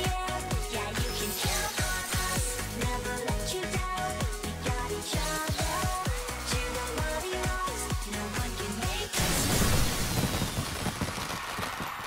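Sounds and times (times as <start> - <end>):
cartoon fireworks bursting and crackling: 8.9 - 12.0.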